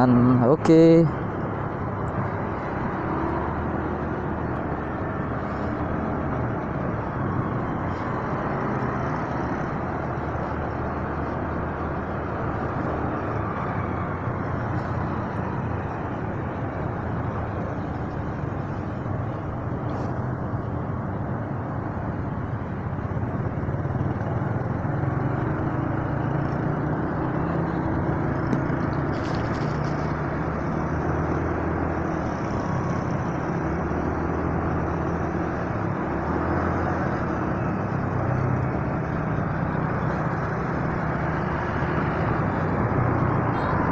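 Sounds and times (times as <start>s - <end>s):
road noise: 0.0s - 43.9s.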